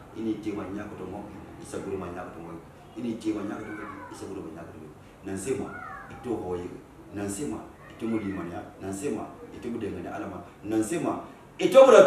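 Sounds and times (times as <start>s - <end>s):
man preaching: 0.2s - 12.0s.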